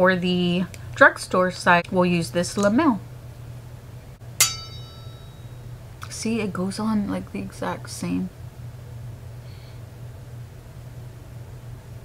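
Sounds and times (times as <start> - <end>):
sharp ringing ding: 4.4 - 5.7.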